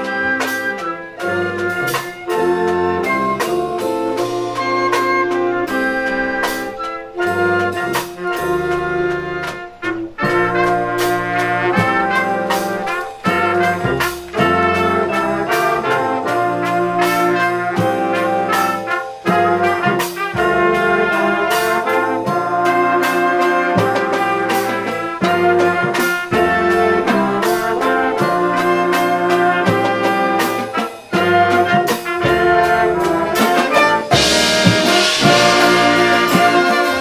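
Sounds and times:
brass chords: 0:00.0 - 0:37.0
steady drum beat: 0:00.0 - 0:37.0.

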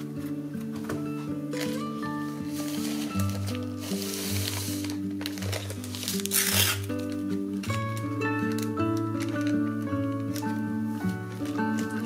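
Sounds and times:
gentle guitar music: 0:00.0 - 0:12.0
plastic bag crinkling: 0:01.5 - 0:12.0.

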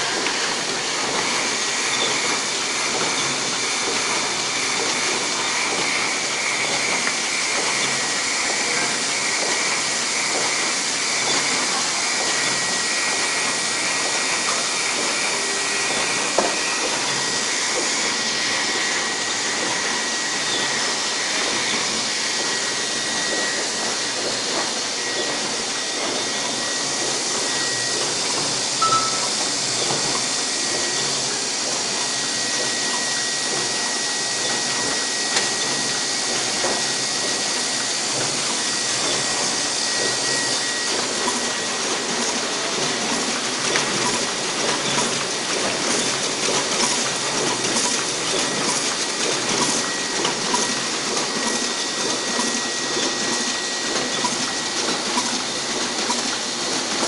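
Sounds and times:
printing press whirring: 0:00.0 - 0:57.0
faint high whine: 0:28.8 - 0:29.3.

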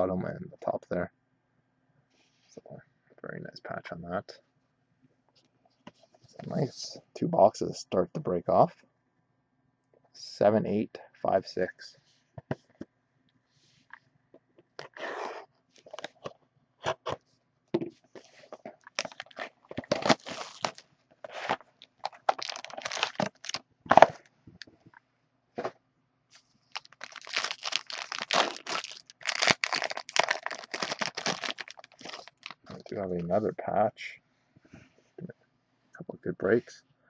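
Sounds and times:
plastic crinkling: 0:18.2 - 0:24.2, 0:26.3 - 0:33.0
shrink-wrap tearing: 0:18.9 - 0:24.2, 0:26.7 - 0:32.9.

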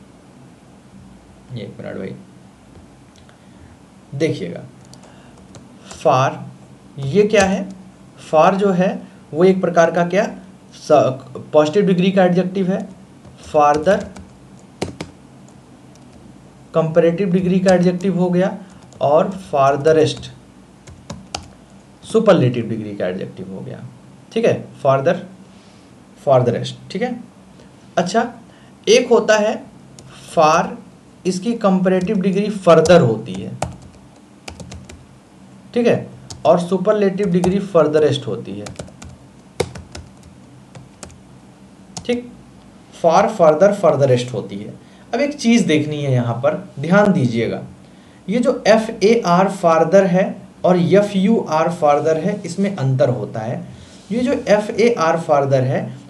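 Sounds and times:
keyboard key clicks: 0:13.8 - 0:15.1.

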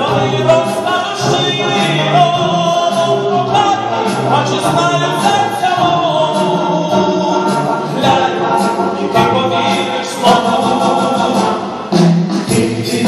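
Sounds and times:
vocal ensemble singing in harmony: 0:00.0 - 0:13.0.

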